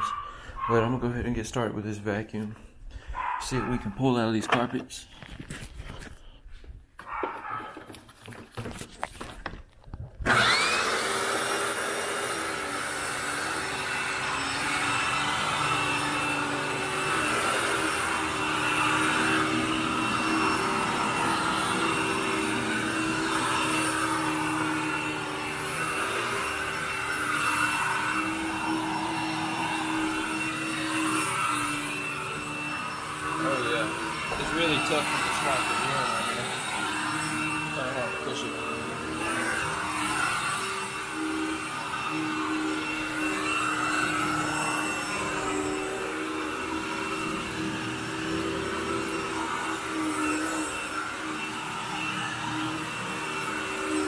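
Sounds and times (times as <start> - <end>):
vacuum cleaner running: 0.0 - 2.6, 10.2 - 54.0.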